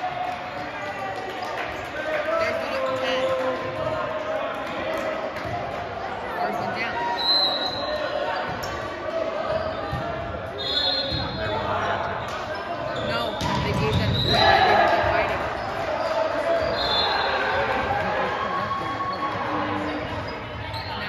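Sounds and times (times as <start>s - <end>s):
voices in echoing hall: 0.0s - 21.0s
sneakers squeaking on hardwood: 7.6s - 17.1s, 19.1s - 21.0s
ball bouncing on court: 9.5s - 10.4s, 12.2s - 15.7s.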